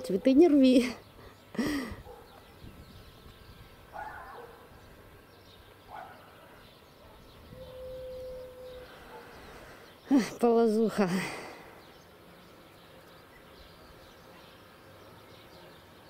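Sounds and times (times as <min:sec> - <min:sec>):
distant animal calls: 0:05.8 - 0:09.8.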